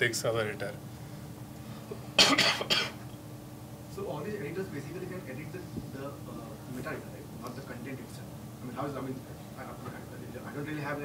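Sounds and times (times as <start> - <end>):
person coughing: 2.2 - 3.0.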